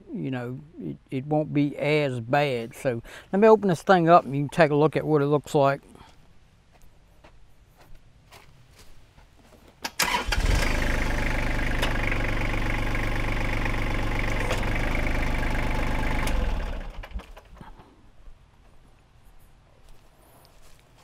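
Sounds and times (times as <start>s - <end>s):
hydraulic grapple opening: 9.8s - 12.5s, 13.5s - 17.6s
diesel tractor engine: 9.9s - 17.8s.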